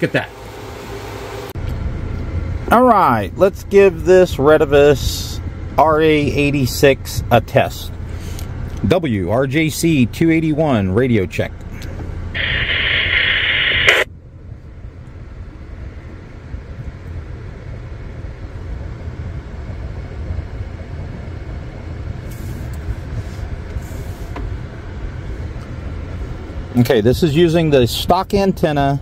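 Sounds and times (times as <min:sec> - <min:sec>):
radio static hiss: 0:12.3 - 0:14.1.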